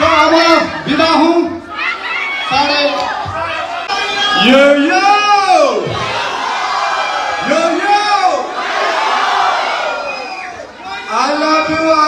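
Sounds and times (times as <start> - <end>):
crowd cheering: 1.7 - 12.0.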